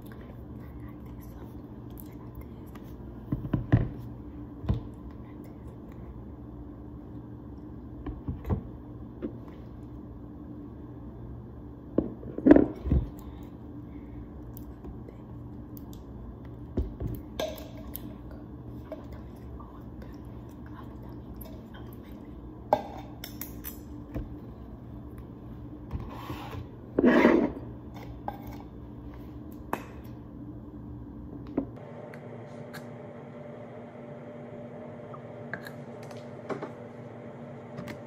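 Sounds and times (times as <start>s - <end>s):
steady low hum: 0.0s - 38.0s
rustling scrape: 26.0s - 27.6s.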